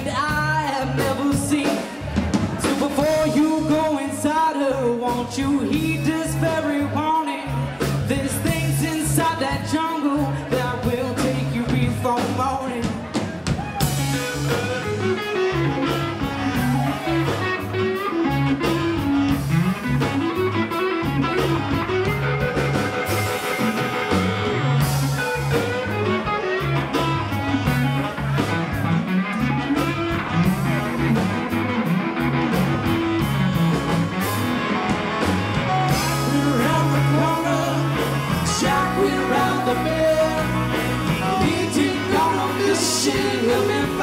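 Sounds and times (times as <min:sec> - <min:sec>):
bass line: 0:00.0 - 0:44.0
electric guitar: 0:00.0 - 0:44.0
steady drums: 0:00.0 - 0:44.0.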